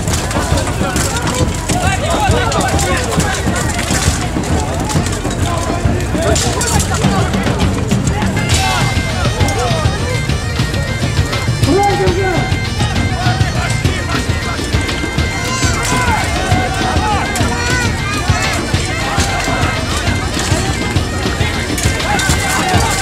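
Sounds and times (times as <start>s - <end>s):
bagpipes playing: 0.0s - 23.0s
crowd talking and calling out: 0.0s - 23.0s
scattered clatter: 0.0s - 23.0s.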